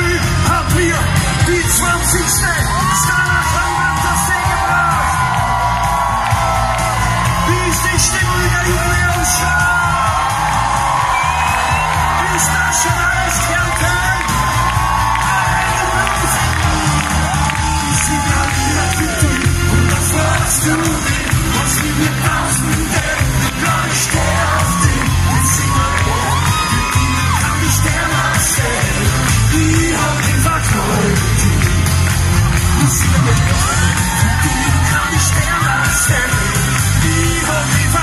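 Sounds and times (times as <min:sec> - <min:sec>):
bass and drum beat: 0:00.0 - 0:38.0
crowd cheering and singing along: 0:00.0 - 0:38.0
man singing into microphone: 0:15.4 - 0:32.0, 0:32.8 - 0:38.0.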